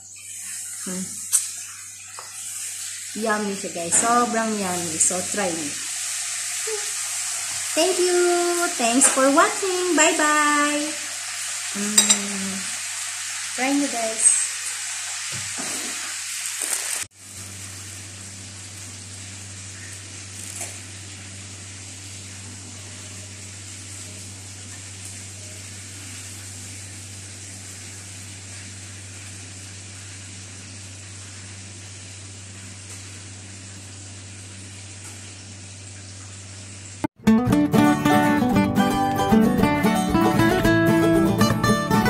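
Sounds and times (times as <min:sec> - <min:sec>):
steady hiss with low hum: 0:15.6 - 0:37.1.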